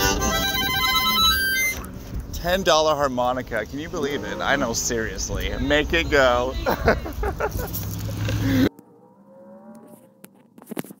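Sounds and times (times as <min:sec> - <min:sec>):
harmonica held chord: 0:00.0 - 0:01.9.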